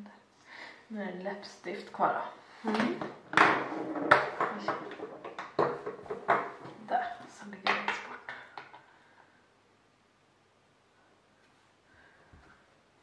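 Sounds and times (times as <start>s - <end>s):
women talking: 0.9s - 3.1s, 4.5s - 4.9s, 6.7s - 8.3s
makeup containers clattering: 2.6s - 8.8s.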